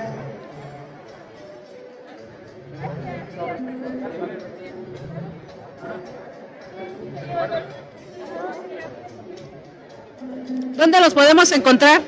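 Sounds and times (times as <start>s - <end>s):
background chatter: 0.0s - 12.0s.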